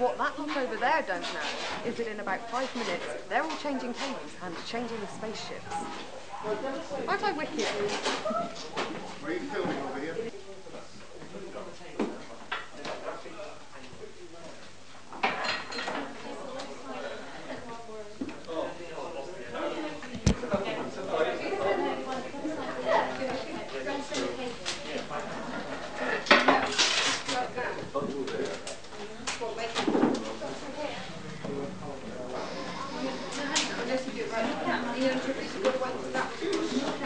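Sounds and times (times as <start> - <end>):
people chattering: 0.0 - 12.0, 16.0 - 37.0
murmur of voices: 0.0 - 14.7, 15.8 - 37.0.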